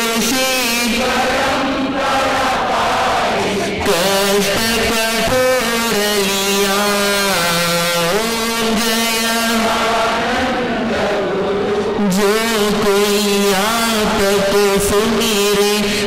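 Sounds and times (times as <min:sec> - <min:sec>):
man singing devotional song: 0:00.0 - 0:01.3, 0:03.6 - 0:16.0.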